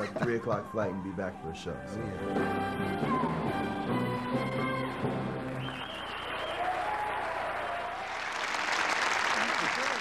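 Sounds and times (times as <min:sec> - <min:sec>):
live stage music: 0:02.0 - 0:06.4
audience applauding: 0:05.3 - 0:10.0.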